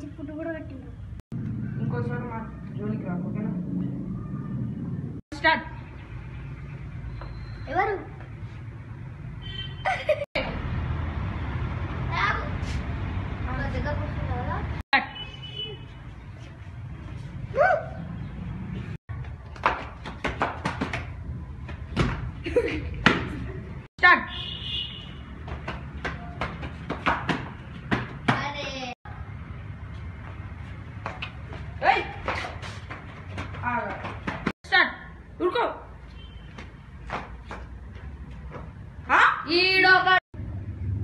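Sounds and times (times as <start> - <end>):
footsteps on concrete stairs: 29.9 - 34.5, 36.5 - 38.9.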